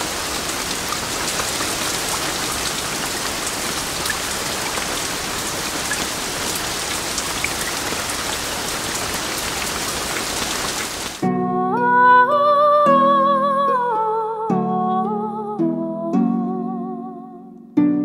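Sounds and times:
heavy rain pouring: 0.0s - 11.2s.

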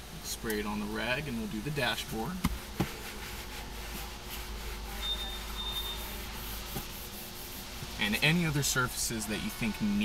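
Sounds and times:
low background hum: 0.0s - 10.0s
cloth rubbing on plastic: 2.6s - 8.5s.

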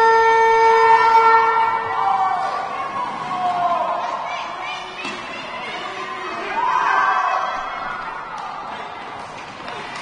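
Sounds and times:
horn long steady blast: 0.0s - 2.2s.

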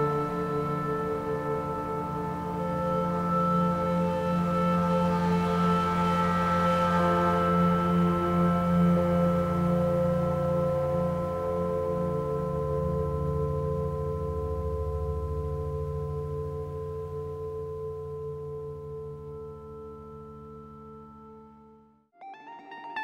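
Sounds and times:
ambient synth pad chord: 0.0s - 23.0s.

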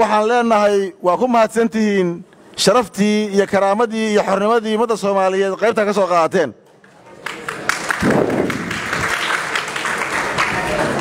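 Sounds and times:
audience applauding: 7.1s - 11.0s.

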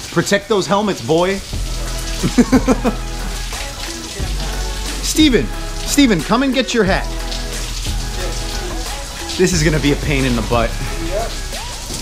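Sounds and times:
rain on concrete: 0.0s - 12.0s.

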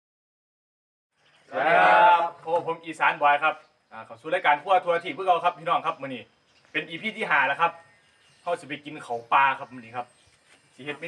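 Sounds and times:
young men shouting together: 1.5s - 2.4s.

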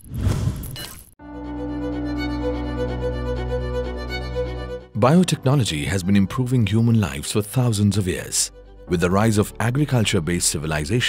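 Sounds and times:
music of held notes: 1.2s - 11.0s.

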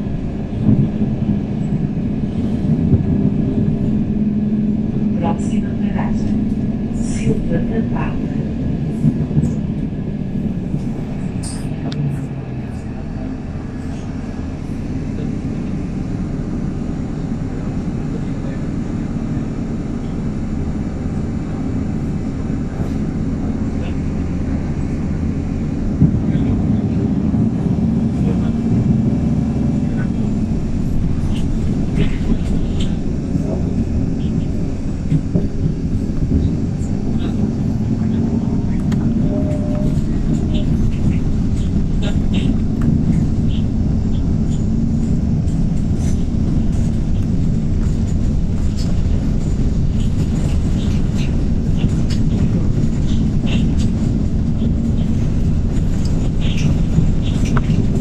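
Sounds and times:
bus engine and road drone: 0.0s - 58.0s
body clicks and rattles: 21.4s - 58.0s.

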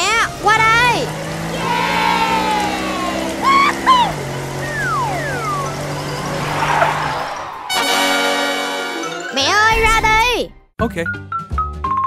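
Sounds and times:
whistle tones sliding down: 3.5s - 7.9s.

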